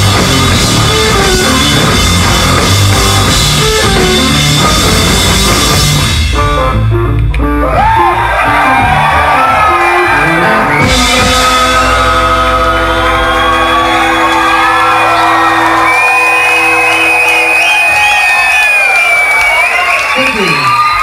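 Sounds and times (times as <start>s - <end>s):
electric guitars and bass chord: 0.0s - 17.1s
audience whooping and shouting: 7.6s - 21.0s.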